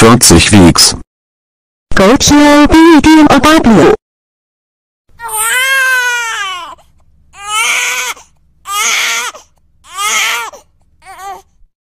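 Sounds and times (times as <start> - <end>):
child crying in wails: 5.2 - 6.8, 7.4 - 11.4.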